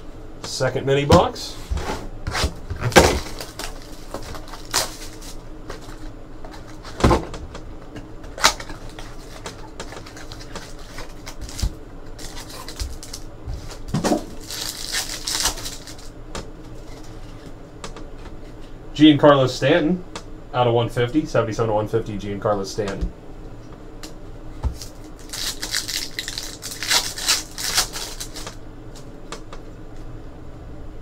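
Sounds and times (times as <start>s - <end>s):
pack wrapper crinkling tearing: 2.8s - 6.9s, 8.4s - 16.1s, 24.8s - 28.6s.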